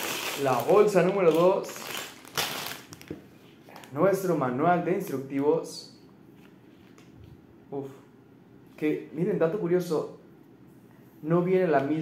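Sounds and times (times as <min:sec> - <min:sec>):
plastic bag rustling: 0:00.0 - 0:04.0.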